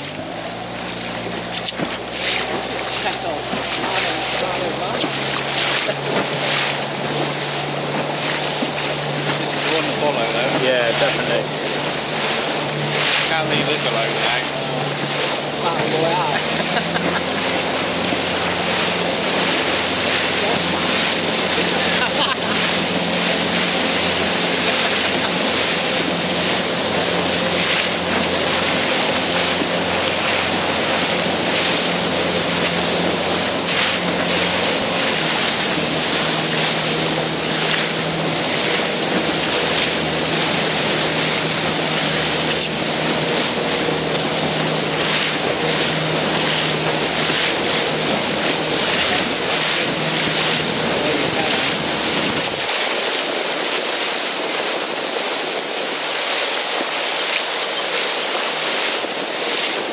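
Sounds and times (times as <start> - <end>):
motorboat engine humming: 0.0 - 59.9
water rushing past hull: 0.0 - 59.9.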